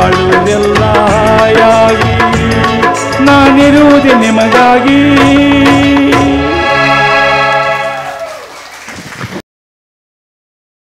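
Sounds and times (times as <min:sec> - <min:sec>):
audience applause: 0:07.4 - 0:09.4.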